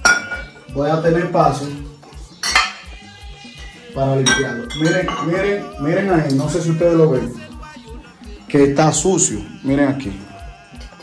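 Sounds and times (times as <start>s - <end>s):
glass bottles clinking: 0.0s - 0.8s, 2.3s - 3.0s, 4.2s - 6.6s.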